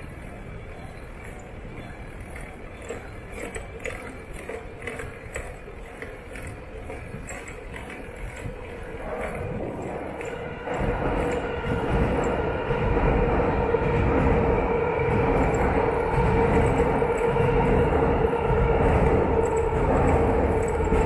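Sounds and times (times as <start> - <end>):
constant humming tone: 0.0 - 21.0
train rumbling over bridge: 0.0 - 21.0.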